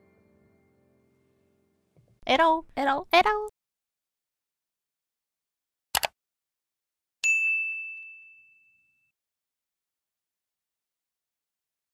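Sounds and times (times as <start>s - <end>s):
bright bell ding: 7.2s - 9.1s.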